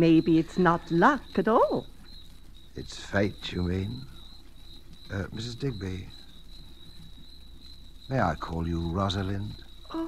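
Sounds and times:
crickets chirping: 0.0 - 10.0
low hum: 0.0 - 10.0.

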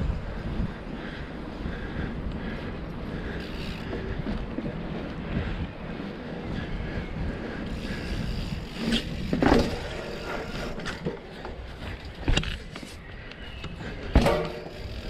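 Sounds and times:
wind on microphone: 0.0 - 11.2
bike tyres rolling on pavement: 0.0 - 15.0.

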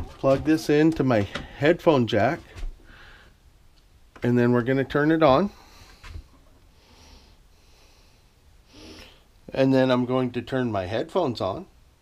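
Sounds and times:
man breathing: 2.8 - 3.5, 5.5 - 9.4.

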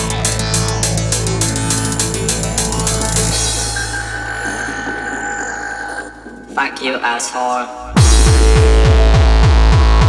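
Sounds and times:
deep bass drone: 0.0 - 6.8, 7.8 - 10.0
dense grainy texture: 0.2 - 8.6
held high synth tones: 2.4 - 6.8.

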